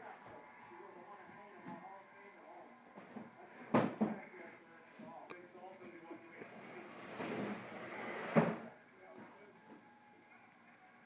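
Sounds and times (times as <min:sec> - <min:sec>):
plastic table scraping wooden floor: 0:06.5 - 0:08.7.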